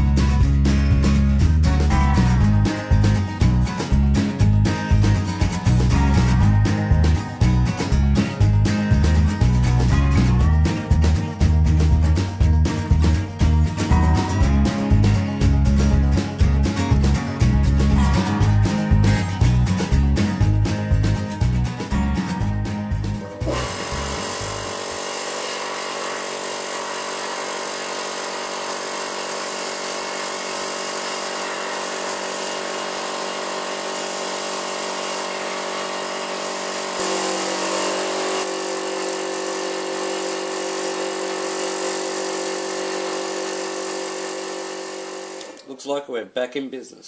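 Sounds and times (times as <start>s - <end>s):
electric air compressor running: 0.0s - 21.2s, 23.0s - 45.7s
music: 0.0s - 25.0s.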